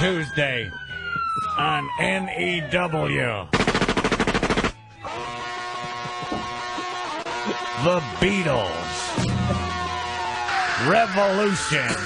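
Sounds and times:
machine-gun fire sound effect: 3.5s - 4.8s.

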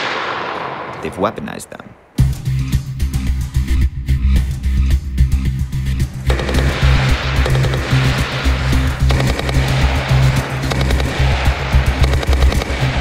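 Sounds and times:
background music with bass line: 2.2s - 13.0s
machine-gun fire bursts: 6.3s - 13.0s.

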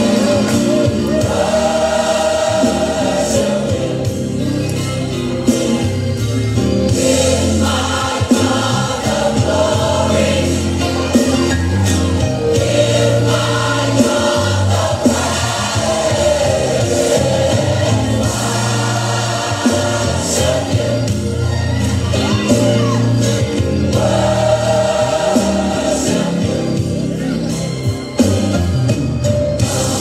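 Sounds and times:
gospel choir singing: 0.0s - 28.8s, 29.4s - 30.0s
sustained bass notes: 0.0s - 30.0s.

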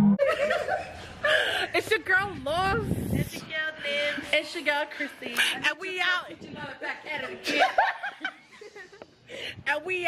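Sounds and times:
women laughing: 0.2s - 1.8s, 7.1s - 9.2s
women talking: 1.6s - 8.2s, 9.5s - 10.0s.

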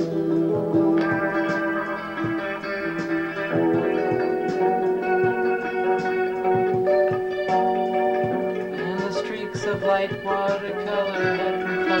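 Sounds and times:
electric guitar picking: 0.0s - 12.0s
organ-like held chords: 0.0s - 12.0s.

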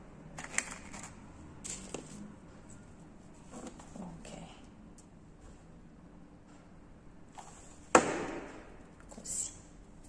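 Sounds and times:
sharp knock: 7.9s - 8.7s.

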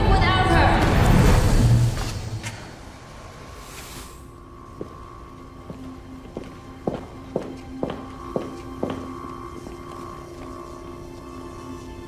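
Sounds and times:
droning music: 4.2s - 12.0s
footsteps on hard floor: 4.8s - 10.6s.

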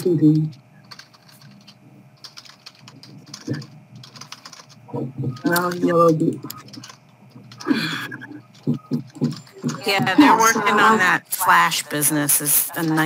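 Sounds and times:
typing on computer keyboard: 0.5s - 7.8s, 8.4s - 9.9s
person speaking: 2.8s - 3.8s, 4.8s - 13.0s.

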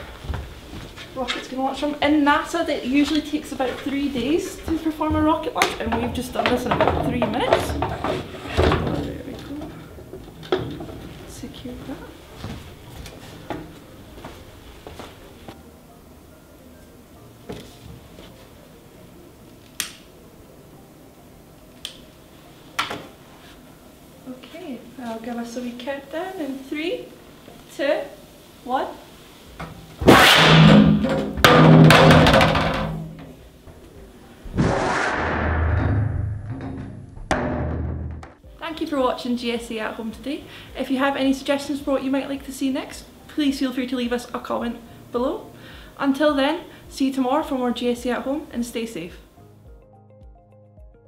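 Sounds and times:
footsteps on stage floor: 0.0s - 1.5s
rocket igniting with deep whoosh: 30.0s - 30.7s, 34.5s - 36.5s.

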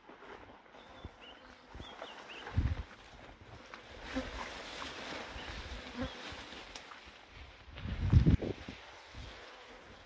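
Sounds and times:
insects buzzing: 3.5s - 7.2s, 8.2s - 10.0s.

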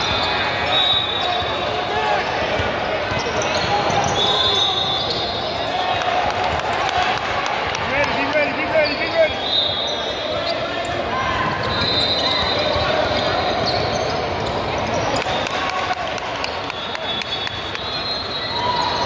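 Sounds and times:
sneaker squeaks: 0.0s - 5.8s, 8.5s - 15.5s, 16.4s - 19.0s
babble of voices in a gym: 0.0s - 19.0s.

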